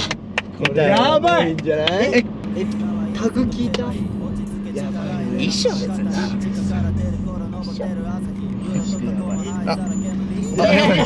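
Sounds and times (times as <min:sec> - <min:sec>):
car cabin drone: 0:00.0 - 0:11.0
faint voices murmuring: 0:02.0 - 0:11.0.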